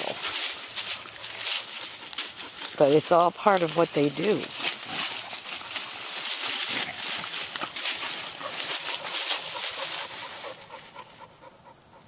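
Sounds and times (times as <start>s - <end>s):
leaves rustling: 0.0s - 11.5s
puppies panting: 0.0s - 12.0s.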